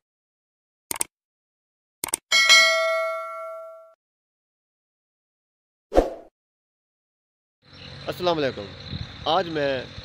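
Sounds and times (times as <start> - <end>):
bell ding: 2.3 - 4.0.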